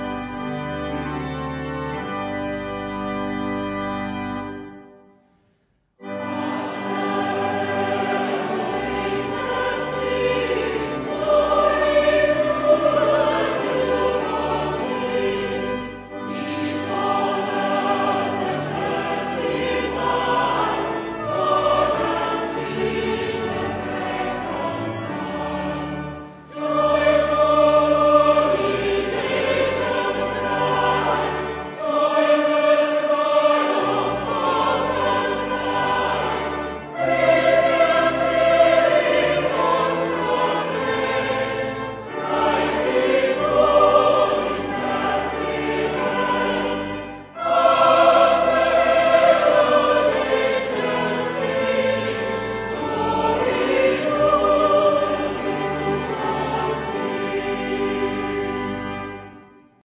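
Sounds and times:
choir singing a carol: 0:00.0 - 0:05.2, 0:06.0 - 0:59.8.

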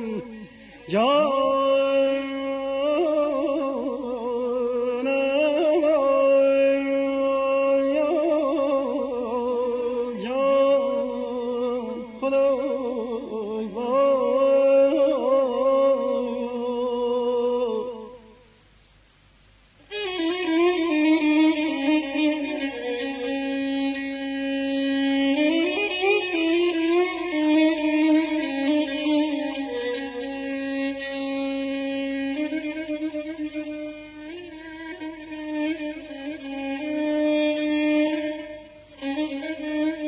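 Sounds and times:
solo violin melody: 0:00.0 - 0:18.2, 0:19.9 - 0:40.0.

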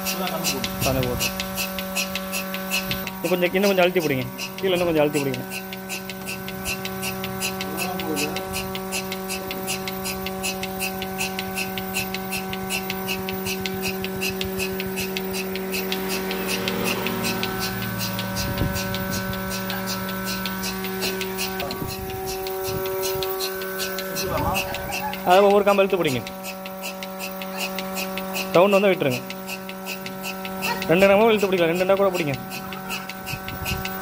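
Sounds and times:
pulsator clicking: 0:00.0 - 0:34.0
vacuum pump motor hum: 0:00.0 - 0:34.0.

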